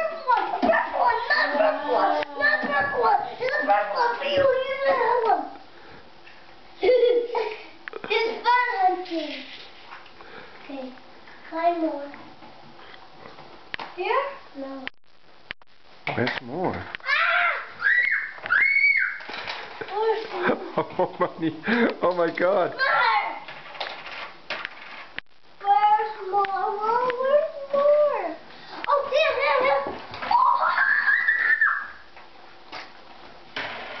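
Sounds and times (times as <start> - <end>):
child squealing: 17.0 - 19.2, 30.3 - 32.0.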